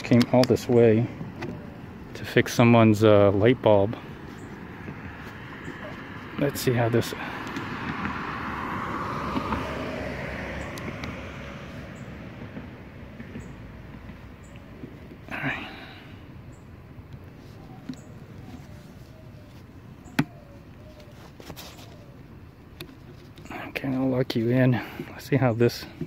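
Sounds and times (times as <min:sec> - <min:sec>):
steady outdoor hiss: 0:00.0 - 0:26.0
car tyres passing on road: 0:02.2 - 0:26.0.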